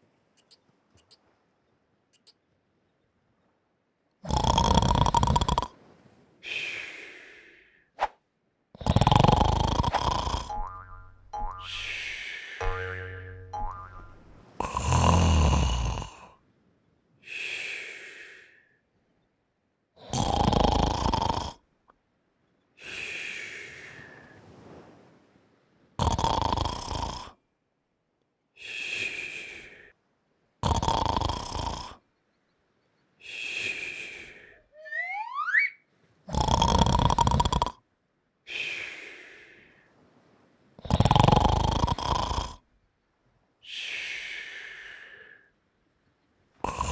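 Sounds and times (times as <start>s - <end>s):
cartoon snoring: 4.3s - 5.7s, 8.8s - 13.6s, 14.6s - 16.3s, 20.0s - 21.6s, 26.0s - 27.4s, 30.6s - 32.0s, 36.3s - 37.8s, 40.8s - 42.6s, 46.7s - 46.9s
buzzing tone with rising whistles: 34.8s - 35.8s.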